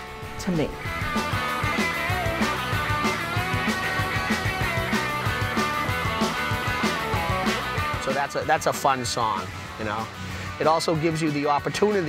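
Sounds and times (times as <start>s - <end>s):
steady drum beat: 0.0s - 10.1s
electric guitars playing: 0.0s - 11.3s.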